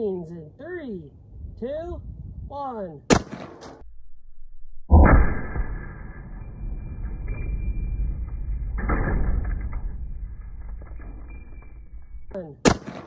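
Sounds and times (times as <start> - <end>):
slowed rifle shot rumble: 4.9 - 11.4.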